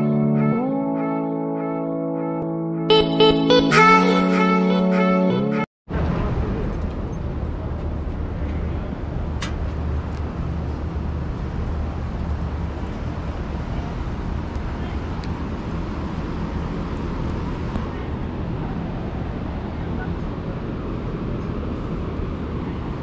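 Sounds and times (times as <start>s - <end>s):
outdoor background noise: 5.9s - 23.0s.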